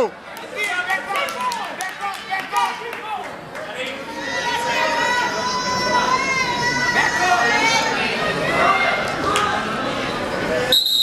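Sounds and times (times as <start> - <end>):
gym crowd noise: 0.0 - 11.0.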